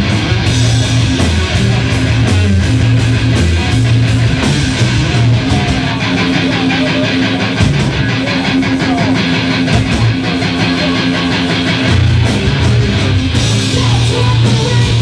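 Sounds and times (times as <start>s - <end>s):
bass guitar: 0.0s - 15.0s
drums: 0.0s - 15.0s
electric guitar distorted: 0.0s - 15.0s.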